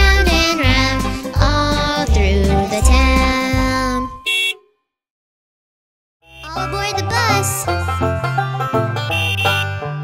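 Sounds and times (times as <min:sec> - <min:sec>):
children's song: 0:00.0 - 0:04.2, 0:06.4 - 0:08.8
cartoon bus horn beep: 0:03.8 - 0:04.9, 0:06.2 - 0:07.5, 0:09.0 - 0:10.0.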